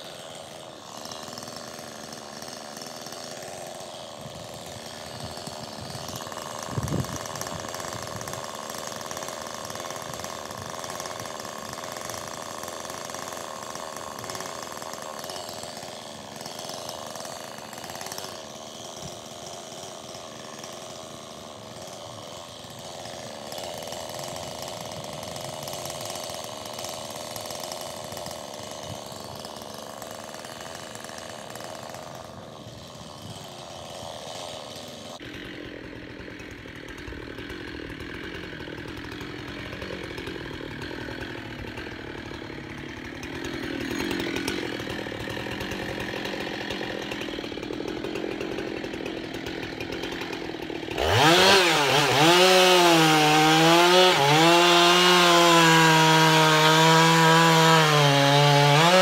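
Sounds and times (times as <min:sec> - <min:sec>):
distant chainsaw cutting logs: 0:00.0 - 0:59.0.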